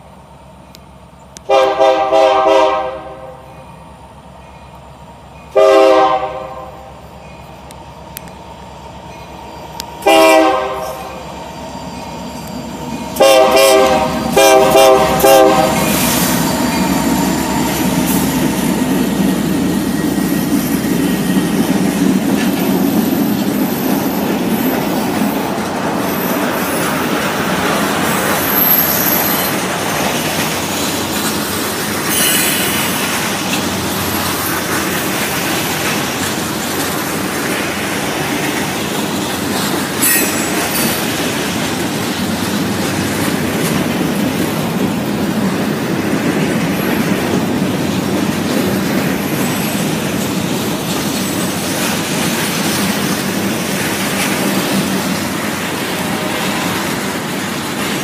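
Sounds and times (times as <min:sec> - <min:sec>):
diesel locomotives passing: 0:00.0 - 0:58.0
freight cars rumbling on rails: 0:00.0 - 0:58.0
train horn blasts: 0:01.4 - 0:03.6, 0:05.5 - 0:07.0, 0:10.0 - 0:11.3, 0:12.8 - 0:18.3, 0:55.8 - 0:57.0.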